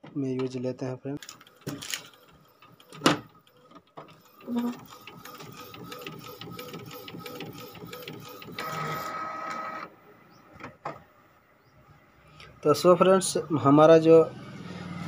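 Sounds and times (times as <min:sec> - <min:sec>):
printer click: 0:01.2 - 0:03.4
printer whine: 0:01.2 - 0:10.4
inkjet printer printing: 0:01.2 - 0:10.7.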